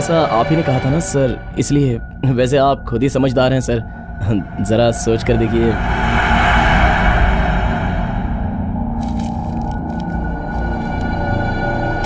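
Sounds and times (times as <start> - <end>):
low tense drone film score: 0.0 - 12.0.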